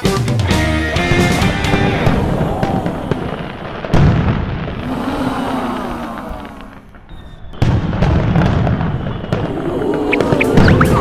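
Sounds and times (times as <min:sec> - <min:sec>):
music: 0:00.0 - 0:03.0
fireworks bangs and crackling: 0:00.8 - 0:11.0.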